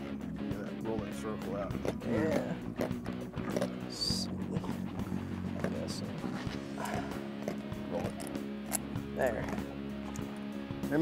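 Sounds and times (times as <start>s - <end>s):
background music: 0.0s - 11.0s
fish croaking: 1.7s - 10.8s.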